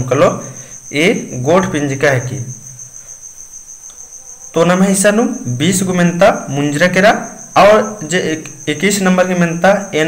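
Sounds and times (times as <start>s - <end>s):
man speaking: 0.0s - 2.6s, 4.5s - 10.0s.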